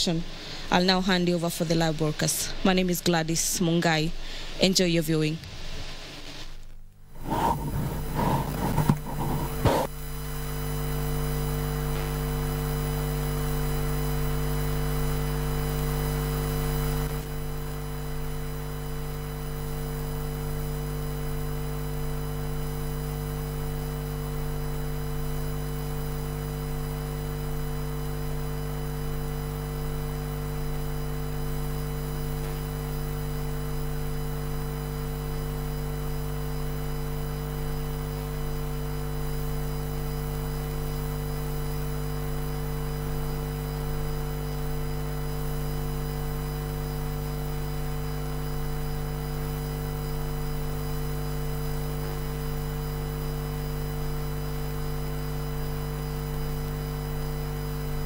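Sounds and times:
electrical hum and buzz: 0:00.0 - 0:58.0.

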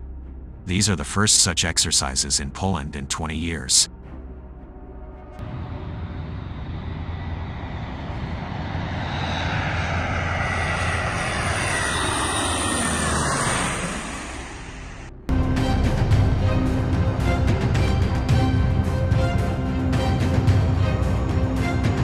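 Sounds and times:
turboprop plane flying past: 0:05.4 - 0:15.1.

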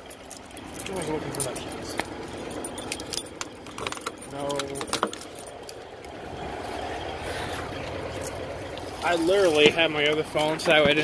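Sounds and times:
metallic clinks and rattles: 0:00.0 - 0:06.0, 0:07.9 - 0:08.5.

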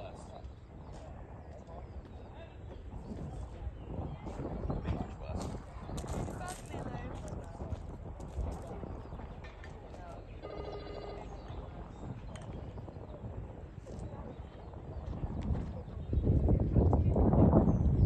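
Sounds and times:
outdoor background noise: 0:00.0 - 0:18.0
indistinct voices: 0:09.9 - 0:11.8
electronic ringing tone: 0:10.4 - 0:11.4.

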